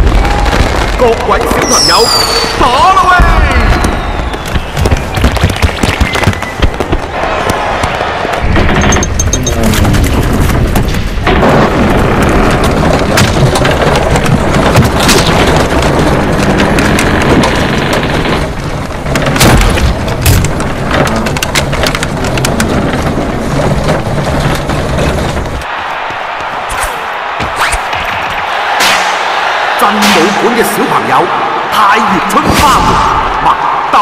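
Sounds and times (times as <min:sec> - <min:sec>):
booms: 0:00.0 - 0:34.0
sharp bangs: 0:00.0 - 0:34.0.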